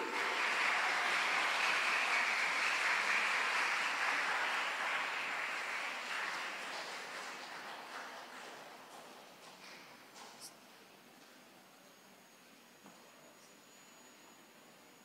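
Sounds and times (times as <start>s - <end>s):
audience applauding: 0.0s - 9.3s.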